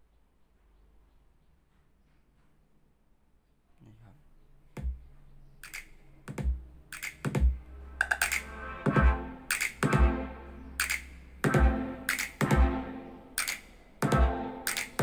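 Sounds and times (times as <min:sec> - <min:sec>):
beat music through speakers: 0:07.2 - 0:15.0.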